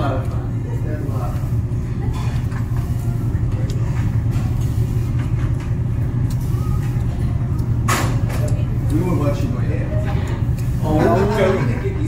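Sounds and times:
low hum of restaurant machinery: 0.0s - 12.0s.

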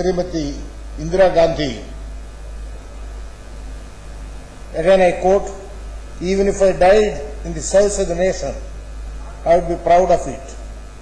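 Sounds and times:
electrical mains hum: 0.0s - 11.0s
faint hiss: 0.0s - 11.0s.

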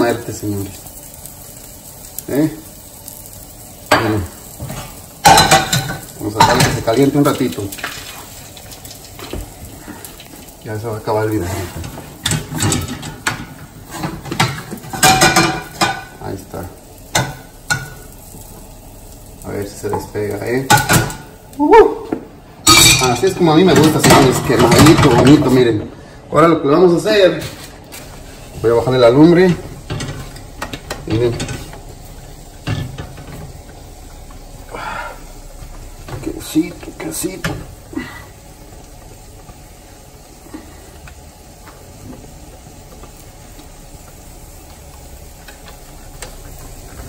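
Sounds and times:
omelette sizzling in pan: 0.0s - 47.0s.

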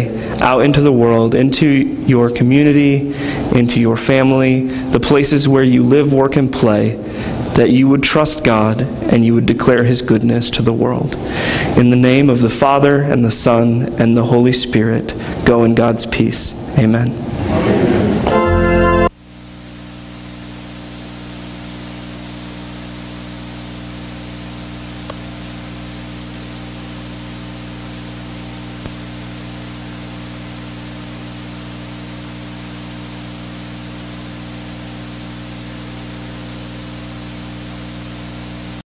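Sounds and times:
electrical hum with tones: 0.0s - 38.8s
static hiss: 18.2s - 38.8s.

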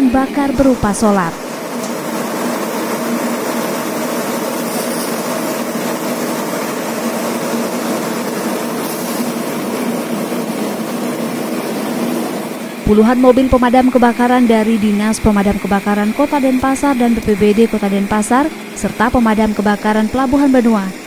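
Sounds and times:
truck engine and pump humming: 0.0s - 21.0s.

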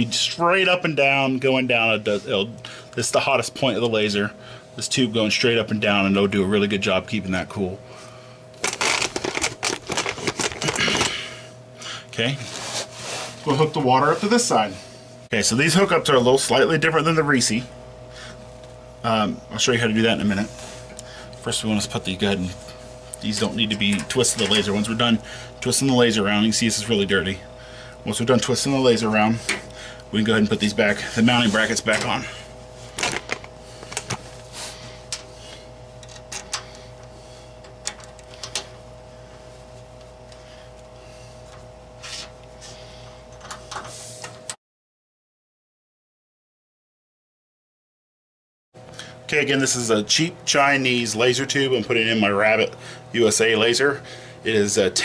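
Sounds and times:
steady hum: 0.0s - 44.6s, 48.8s - 55.0s.

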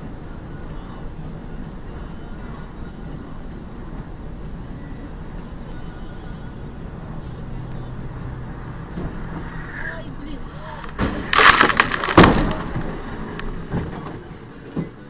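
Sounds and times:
road and engine noise: 0.0s - 15.0s
heavy impact: 6.6s - 15.0s
car crash smash of crumpling metal: 10.8s - 14.3s.

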